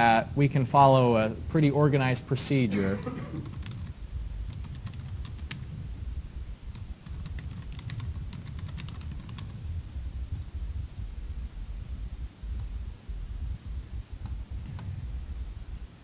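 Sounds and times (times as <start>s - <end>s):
low steady rumble: 0.0s - 16.0s
computer keyboard typing: 3.3s - 5.7s, 6.7s - 9.7s, 13.5s - 14.9s.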